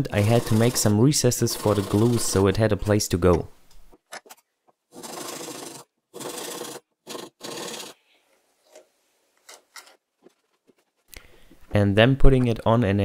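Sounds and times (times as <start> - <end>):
hand saw rasping on wood: 0.2 - 2.4, 5.0 - 8.0.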